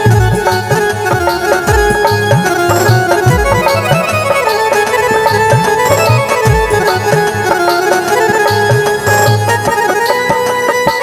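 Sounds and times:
harmonium holding steady notes: 0.0 - 11.0.

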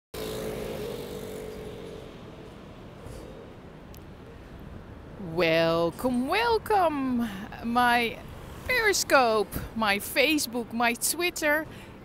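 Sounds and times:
passing vehicles: 0.2 - 12.0.

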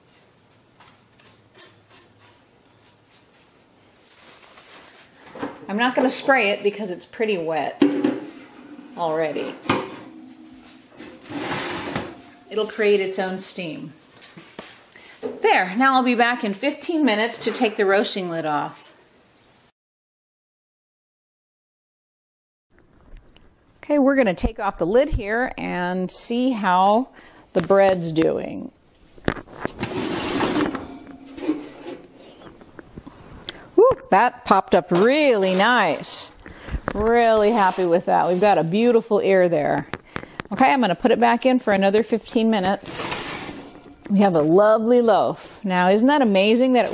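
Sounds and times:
oven rack scraping on runners: 8.1 - 13.2, 29.2 - 32.8, 42.8 - 44.4
person speaking: 8.9 - 9.7, 12.4 - 13.9, 44.0 - 46.9
oven rack knock: 9.6 - 12.4.

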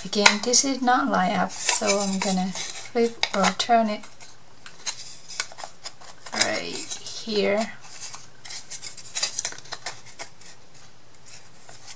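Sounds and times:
wooden pieces clicking and tapping: 3.0 - 7.7.

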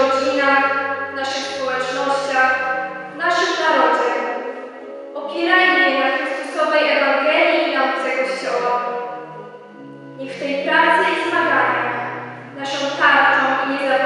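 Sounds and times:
held accompanying notes: 0.0 - 14.0.

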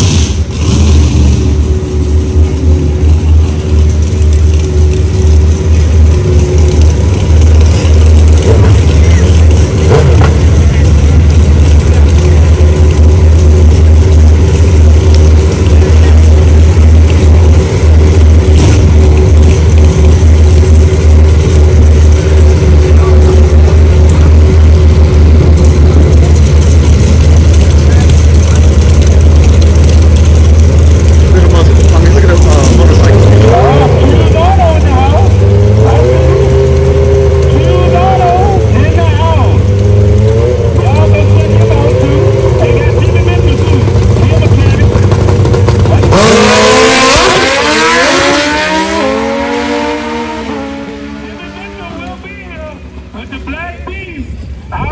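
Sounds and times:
motorcycles launching through gear changes: 0.0 - 52.6
motorcycle engines rumbling and revving: 0.0 - 54.9.

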